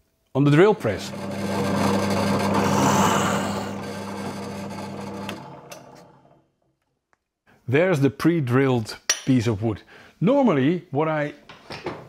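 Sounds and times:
drill boring into wood: 0:00.6 - 0:06.4
drill press motor hum: 0:00.8 - 0:06.5.

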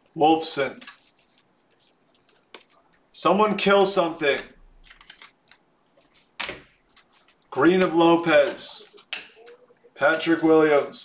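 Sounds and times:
handling trading cards: 0:00.7 - 0:03.2, 0:03.9 - 0:11.0.

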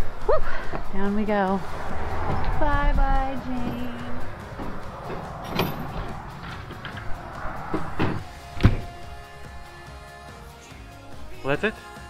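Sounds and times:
low rumble: 0:00.8 - 0:08.3
metal door being closed: 0:04.6 - 0:09.0.

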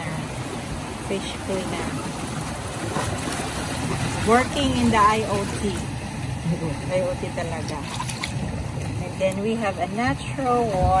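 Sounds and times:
surf washing on shore: 0:00.0 - 0:11.0
wind on microphone: 0:09.7 - 0:11.0.

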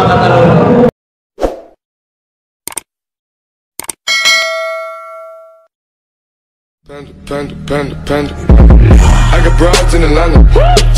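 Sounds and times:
notification bell ding: 0:04.1 - 0:05.7.

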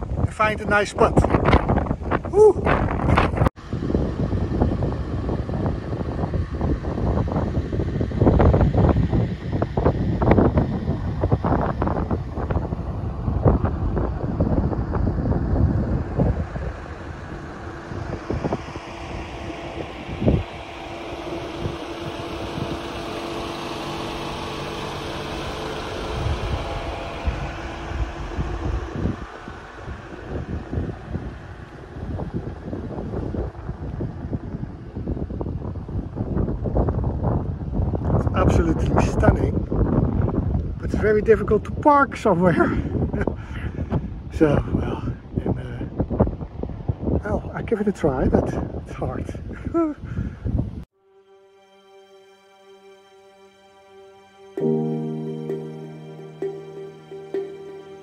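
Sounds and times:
wind buffeting microphone: 0:00.0 - 0:50.9
low steady hum: 0:01.9 - 0:36.6, 0:52.8 - 0:58.0.

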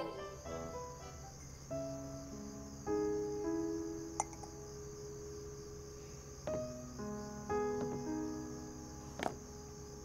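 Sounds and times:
crickets chirring: 0:00.0 - 0:10.0
soft background music: 0:00.0 - 0:10.0.

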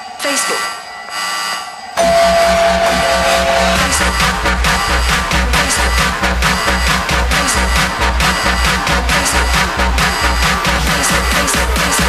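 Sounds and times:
buzzer-like high tone: 0:00.0 - 0:08.9
electronic dance music: 0:00.0 - 0:12.0.

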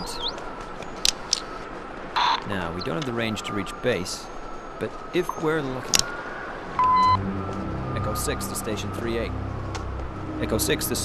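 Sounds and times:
short electronic beep: 0:06.8 - 0:07.2.

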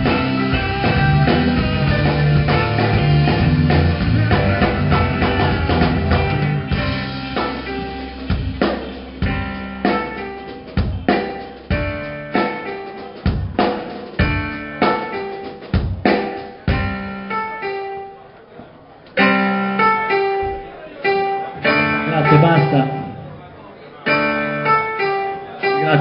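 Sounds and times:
drum hits: 0:00.0 - 0:17.2
guitar and keyboard chords: 0:00.0 - 0:18.3, 0:19.1 - 0:26.0.

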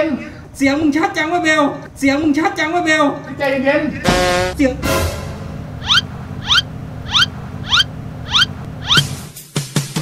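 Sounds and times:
low steady hum: 0:03.1 - 0:08.9
short rising chirps: 0:05.8 - 0:09.1.

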